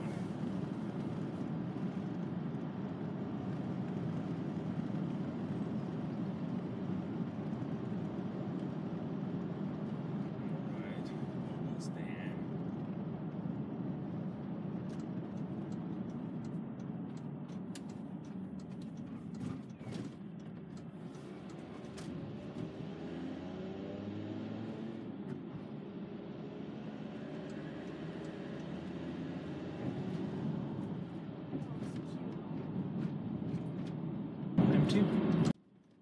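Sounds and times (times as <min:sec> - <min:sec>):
van cabin road rumble: 0:00.0 - 0:36.0.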